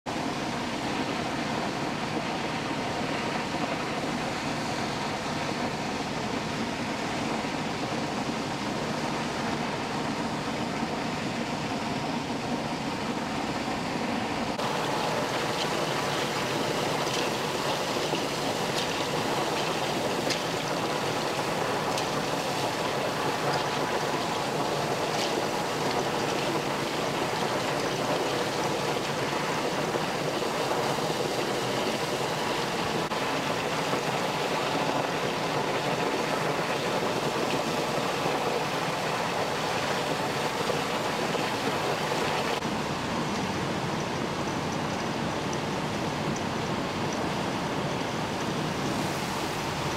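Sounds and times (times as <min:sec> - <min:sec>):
high-pressure water jet gushing: 0:00.1 - 0:49.9.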